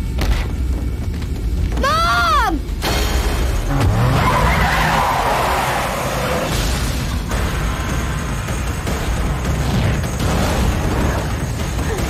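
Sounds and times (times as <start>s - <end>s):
steady low rumble: 0.0s - 3.9s
car tyres skidding: 3.8s - 6.5s.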